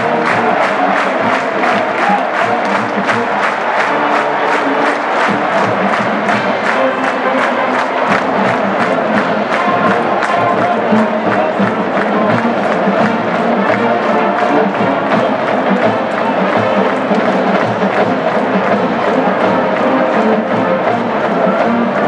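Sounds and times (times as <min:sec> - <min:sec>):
marching band playing: 0:00.0 - 0:22.0
stadium crowd cheering: 0:00.0 - 0:22.0.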